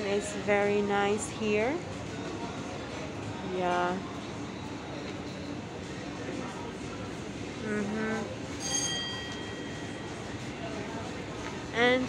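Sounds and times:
high metallic ring: 8.6s - 10.2s.

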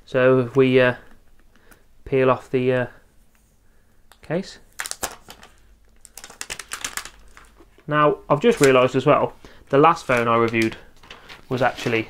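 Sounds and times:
plastic clicks and crackles: 4.8s - 7.9s.

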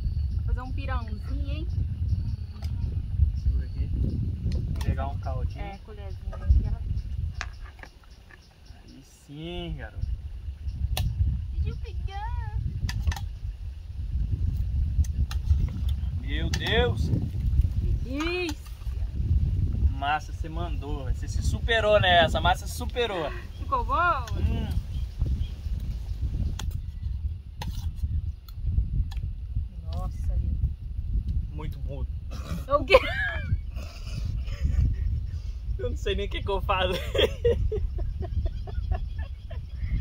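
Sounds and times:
wind rumble on microphone: 0.0s - 40.0s.

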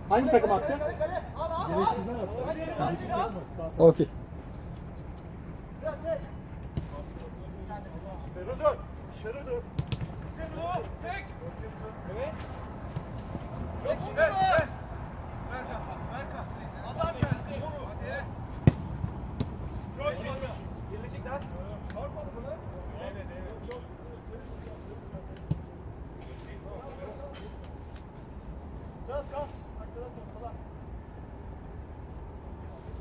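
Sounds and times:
ball kicked thuds: 9.7s - 10.2s, 17.2s - 17.5s, 18.6s - 19.6s.

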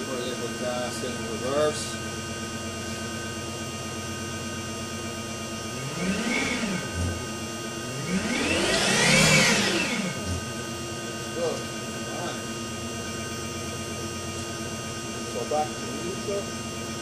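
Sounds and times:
electric motor whine: 0.0s - 17.0s
steady hum: 0.0s - 17.0s.

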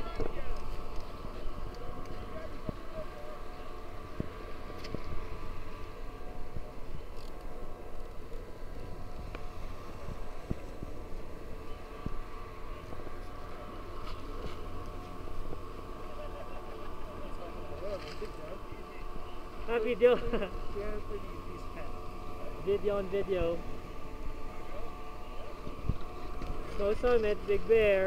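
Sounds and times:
constant mechanical hum: 0.0s - 28.0s
distant voices: 0.0s - 28.0s
wind rumble on microphone: 4.0s - 13.2s, 25.6s - 26.8s.

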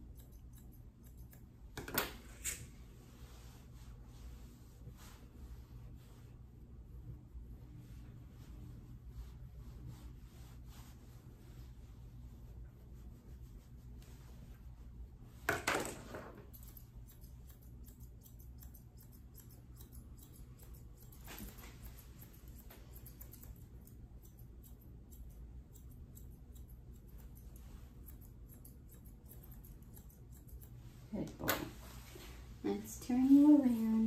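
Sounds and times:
low room hum: 0.0s - 34.0s
grooming shears snipping: 16.5s - 31.7s.

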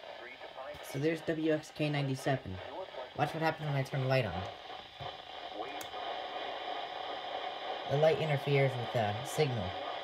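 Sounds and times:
faint broadcast voice: 0.0s - 4.7s, 5.4s - 6.7s, 7.5s - 10.0s
radio static hiss: 0.0s - 10.0s.

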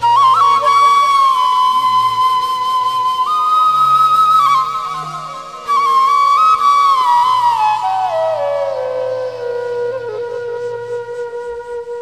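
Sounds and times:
bamboo flute long note: 0.0s - 12.0s.

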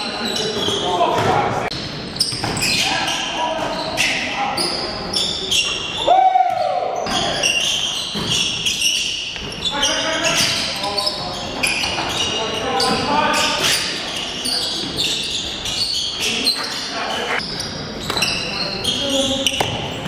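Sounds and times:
players' voices: 0.0s - 20.0s
sneakers squeaking on court: 0.0s - 20.0s
basketball bouncing: 1.2s - 2.7s
loud shout: 6.0s - 7.0s.

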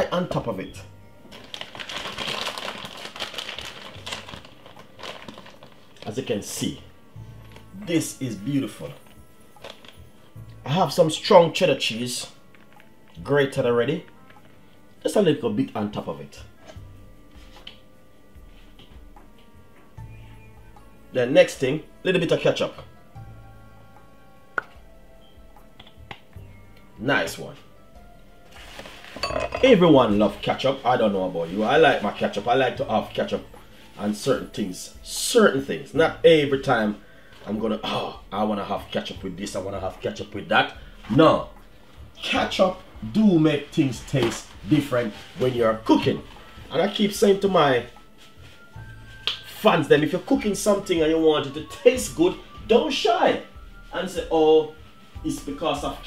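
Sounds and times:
quiet background music: 0.0s - 56.0s
light material crinkling and rustling: 0.2s - 20.2s, 25.6s - 56.0s.

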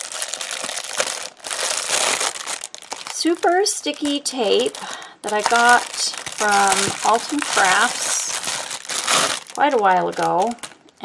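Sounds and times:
plastic wrapper crinkling: 0.0s - 11.0s.

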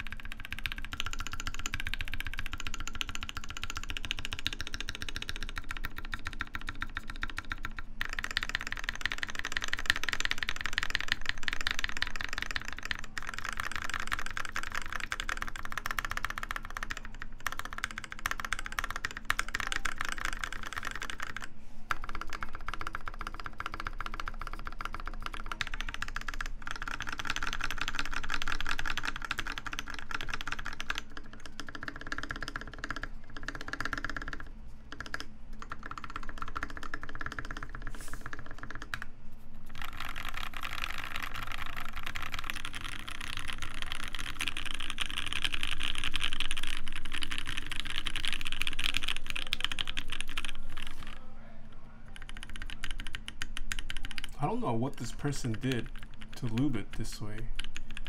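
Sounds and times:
fast typing on mechanical keyboard: 0.0s - 51.3s, 52.0s - 58.0s.

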